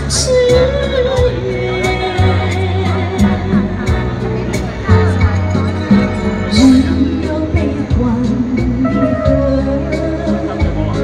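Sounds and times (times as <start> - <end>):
electronic keyboard with steady beat: 0.0 - 11.0
woman singing into a microphone: 0.0 - 11.0.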